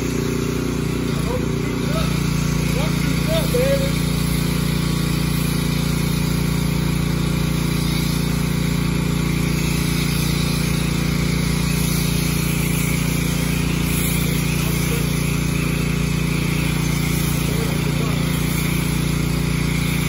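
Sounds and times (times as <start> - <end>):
pressure washer motor humming: 0.0 - 20.0
water spray hissing: 0.0 - 20.0.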